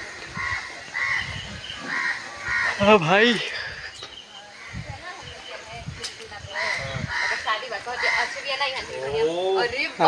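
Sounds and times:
bird calling: 0:00.0 - 0:09.6.

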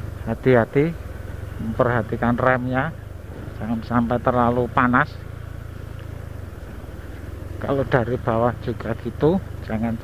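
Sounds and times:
tyres on the road: 0:00.0 - 0:10.0
vehicle engine drone: 0:00.0 - 0:10.0.

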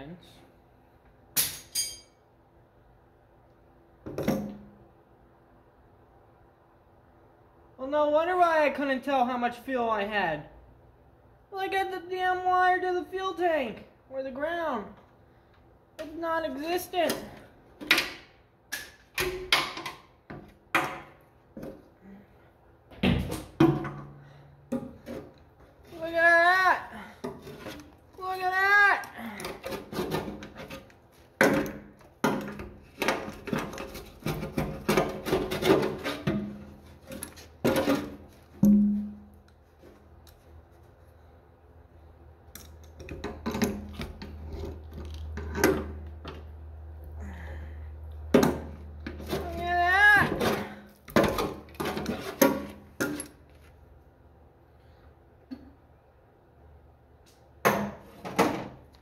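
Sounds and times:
wrench clinking on metal: 0:01.4 - 0:02.2
hand tools scraping on metal tank: 0:29.4 - 0:30.9, 0:33.2 - 0:38.3.

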